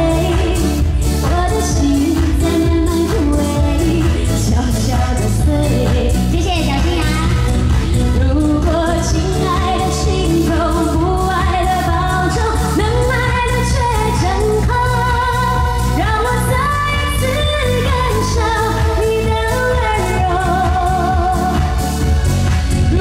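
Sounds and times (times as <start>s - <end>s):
woman singing into microphone: 0.0s - 21.8s
pop backing track with beat: 0.0s - 23.0s.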